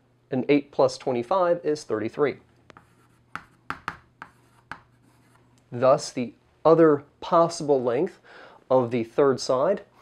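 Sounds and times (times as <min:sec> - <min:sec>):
chalk writing on chalkboard: 0:02.7 - 0:05.5.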